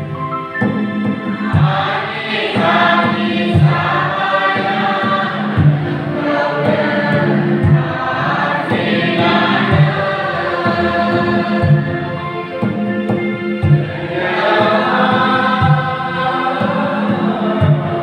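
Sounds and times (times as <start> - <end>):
congregation singing a hymn: 0.0 - 18.0
low drum beat: 0.0 - 18.0.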